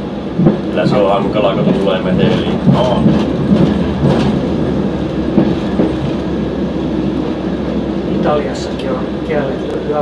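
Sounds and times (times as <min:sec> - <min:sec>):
railbus engine and running noise: 0:00.0 - 0:10.0
wheel clicks over rail joints: 0:00.4 - 0:06.2.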